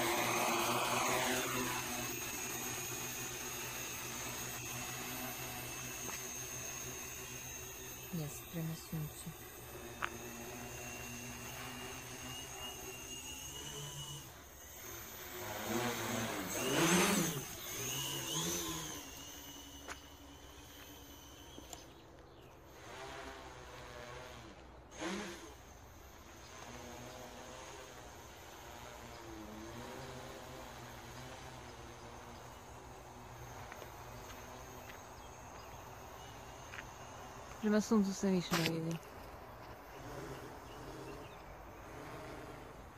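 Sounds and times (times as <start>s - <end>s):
quadcopter motors humming: 0.0s - 42.9s.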